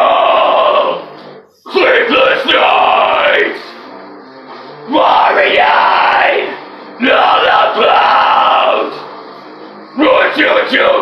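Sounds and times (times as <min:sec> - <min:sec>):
man screaming metal vocals: 0:00.0 - 0:01.1, 0:01.7 - 0:03.7, 0:04.9 - 0:09.0, 0:10.0 - 0:11.0
backing music: 0:00.0 - 0:11.0.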